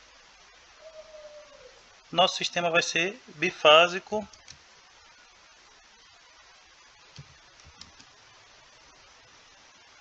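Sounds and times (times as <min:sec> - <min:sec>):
microphone hiss: 0:00.0 - 0:10.0.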